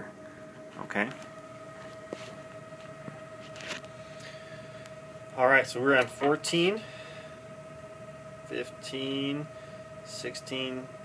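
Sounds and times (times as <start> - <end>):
steady high hum: 0.0 - 11.0.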